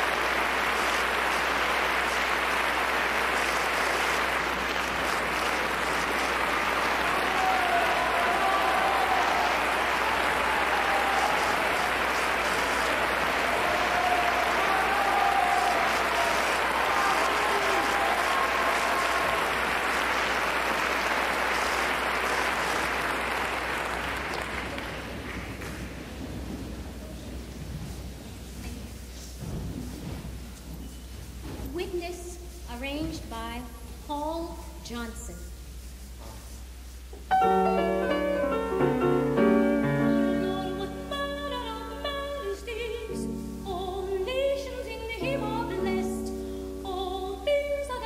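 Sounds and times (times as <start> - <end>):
audience cheering: 0.0 - 25.6
audience applauding: 0.0 - 26.4.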